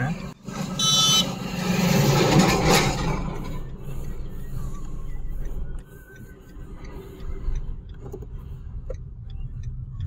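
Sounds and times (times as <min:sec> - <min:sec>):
road traffic rushing: 0:00.0 - 0:10.0.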